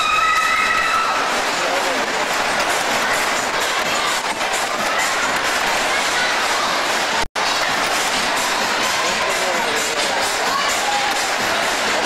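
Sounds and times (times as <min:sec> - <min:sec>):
ride car rumbling along rails: 0:01.3 - 0:12.0.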